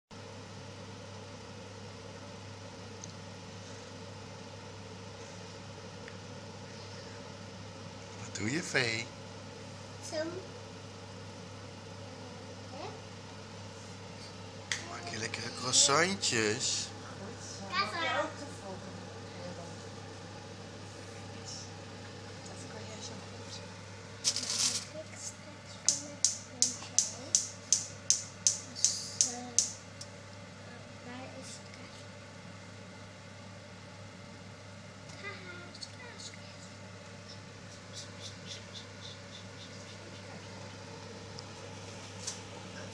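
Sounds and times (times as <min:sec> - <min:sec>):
low mechanical hum: 0:00.1 - 0:42.9
sharp evenly spaced taps: 0:25.9 - 0:29.8.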